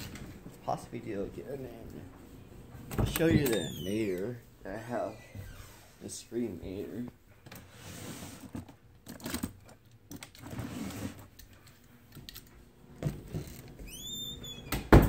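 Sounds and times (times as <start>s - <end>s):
high rising squeak: 3.3s - 4.2s.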